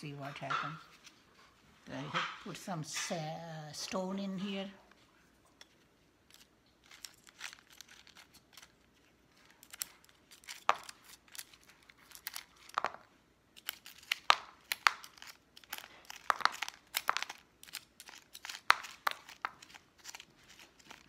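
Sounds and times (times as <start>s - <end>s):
plastic plant pot crackling and clicking: 5.6s - 21.0s.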